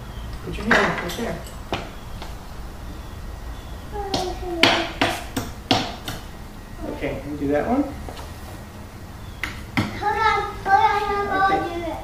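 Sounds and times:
hammer hitting nail into wood: 4.2 - 6.3.

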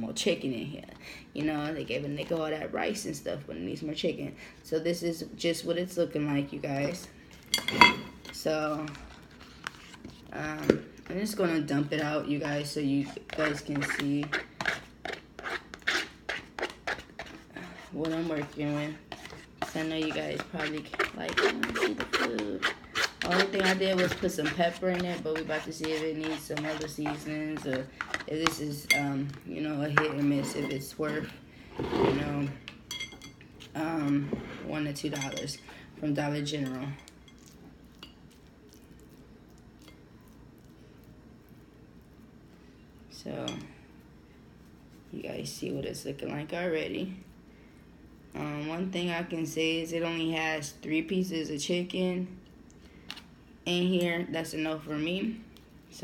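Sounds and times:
food scraped from bowl onto plate: 30.0 - 32.5.

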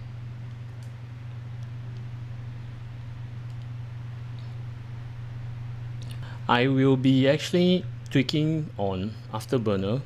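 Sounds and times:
computer fans humming: 0.0 - 10.0.

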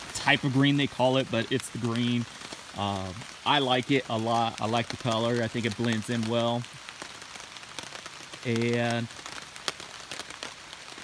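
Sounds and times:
rain drops ticking on a tarp: 0.0 - 11.0.

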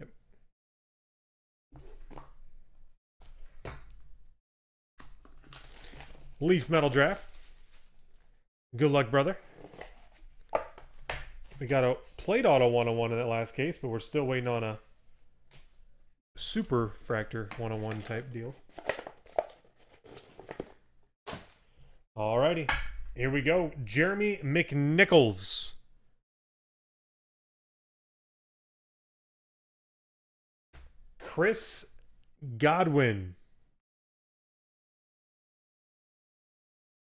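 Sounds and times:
plastic wrapping crinkling and tearing: 5.0 - 8.4
trading cards handling: 5.0 - 8.4, 9.6 - 12.6, 17.3 - 21.7.

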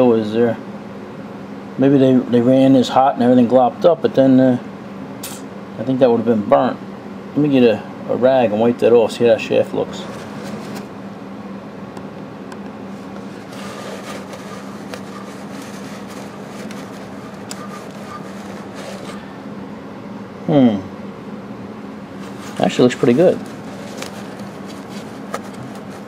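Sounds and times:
steady low hum: 0.0 - 26.0
rag rubbing metal: 13.2 - 19.3.

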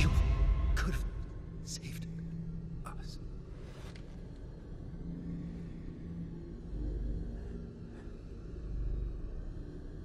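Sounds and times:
dark rumbling drone: 0.0 - 10.0.

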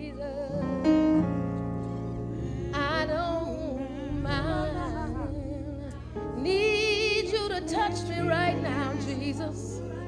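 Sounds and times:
sustained keyboard chords: 0.0 - 10.0
person singing with vibrato: 2.3 - 10.0.

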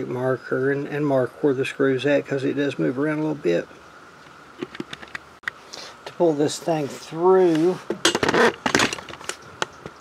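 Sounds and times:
small metal parts rattling: 8.0 - 9.4.

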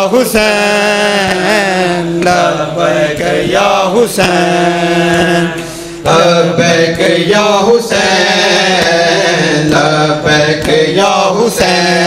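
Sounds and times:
men chanting over microphones: 0.0 - 12.0.

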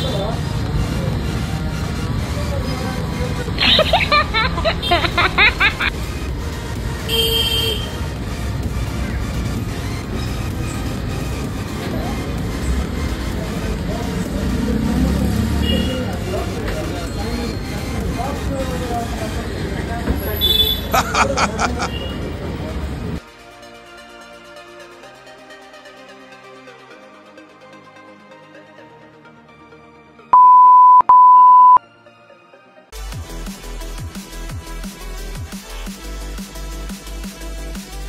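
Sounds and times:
traffic hum: 0.0 - 23.2
people talking: 2.2 - 5.9, 13.3 - 23.0
electronic beeps: 30.4 - 31.8.

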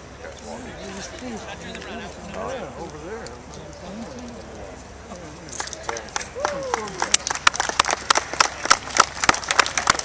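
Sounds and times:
crowd applause: 5.8 - 10.0.

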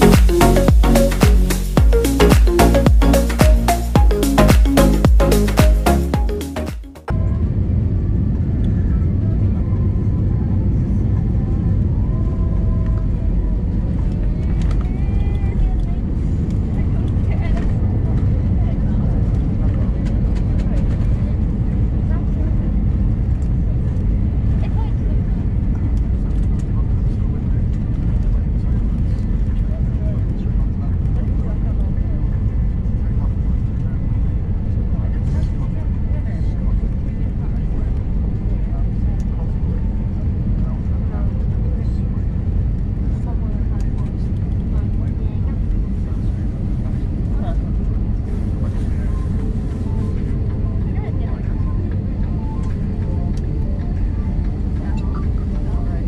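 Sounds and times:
airliner taxiing from cabin: 7.2 - 56.0.

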